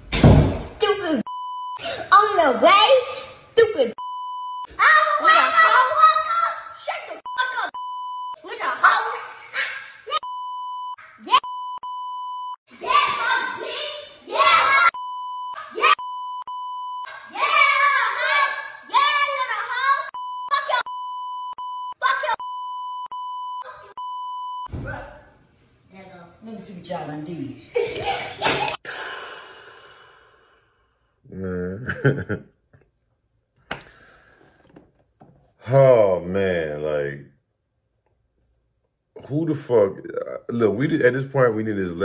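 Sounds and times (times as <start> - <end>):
censor bleep: 1.3 - 1.8, 4.0 - 4.7, 7.3 - 8.4, 10.2 - 12.6, 15.0 - 17.1, 20.1 - 24.7
child speaking loudly: 2.1 - 3.9, 4.8 - 7.8, 8.4 - 10.2, 17.2 - 20.9, 22.0 - 22.4.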